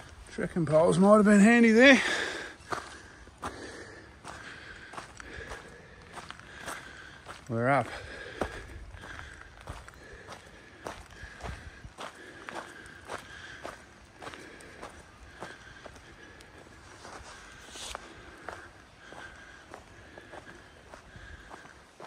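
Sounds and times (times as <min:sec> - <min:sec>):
footsteps on gravel: 0:00.0 - 0:22.0.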